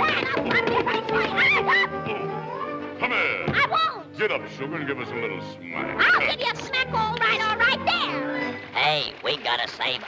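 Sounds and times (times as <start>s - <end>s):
orchestral cartoon music: 0.0s - 9.2s.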